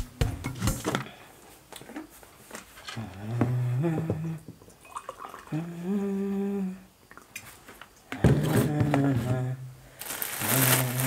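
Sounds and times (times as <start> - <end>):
man humming: 2.9 - 4.6, 5.5 - 7.0, 8.2 - 9.8, 10.4 - 11.0.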